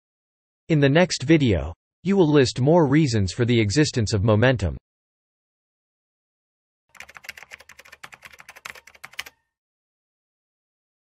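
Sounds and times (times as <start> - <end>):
keyboard key clicks: 7.0 - 9.4.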